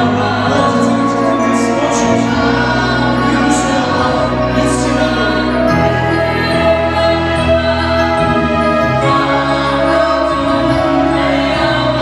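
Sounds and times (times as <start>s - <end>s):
group singing gospel song: 0.0s - 12.0s
keyboard accompaniment: 0.0s - 12.0s.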